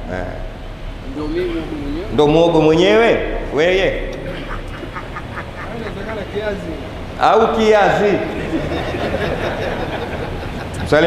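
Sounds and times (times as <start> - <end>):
people talking: 0.0 - 11.0
person laughing: 4.2 - 6.6, 8.4 - 11.0.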